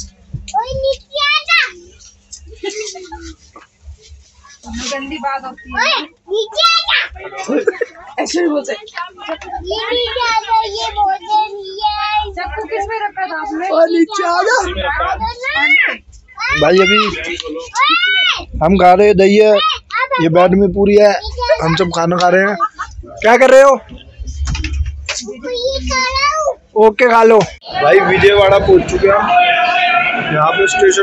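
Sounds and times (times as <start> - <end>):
train carriage rumble: 0.0 - 15.8, 20.4 - 26.6, 27.2 - 31.0
child speaking: 0.5 - 1.9, 5.7 - 7.2, 9.6 - 12.5, 13.6 - 17.1, 19.6 - 20.3, 21.2 - 21.9, 25.2 - 26.6.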